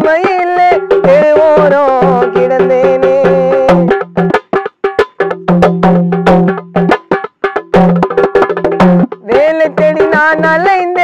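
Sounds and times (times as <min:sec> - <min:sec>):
man singing: 0:00.0 - 0:04.0, 0:09.3 - 0:11.0
barrel drum beating fast rhythm: 0:00.0 - 0:11.0.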